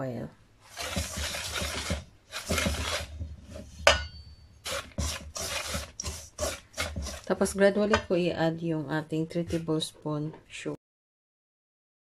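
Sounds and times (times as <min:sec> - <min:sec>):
whisk scraping in steel bowl: 0:00.6 - 0:04.0, 0:04.6 - 0:08.2.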